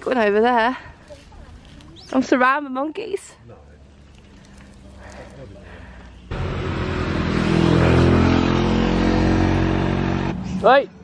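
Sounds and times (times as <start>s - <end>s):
vehicle engine running: 6.2s - 10.8s.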